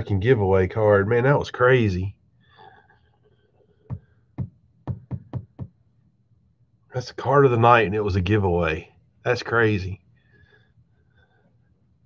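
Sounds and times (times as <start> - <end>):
sharp knocks on hard surface: 3.9 - 5.8.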